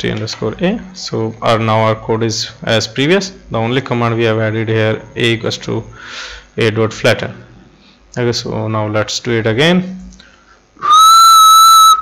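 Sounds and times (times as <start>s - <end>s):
person whistling high note: 10.8s - 12.0s.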